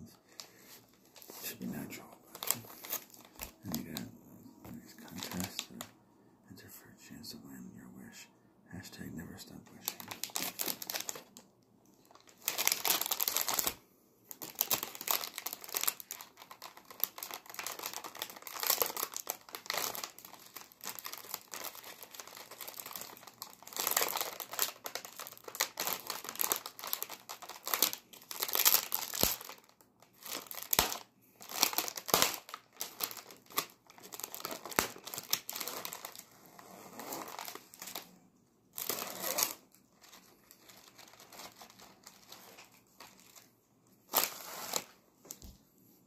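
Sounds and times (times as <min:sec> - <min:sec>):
plastic wrapper crinkling: 0:00.2 - 0:05.9, 0:09.6 - 0:45.6.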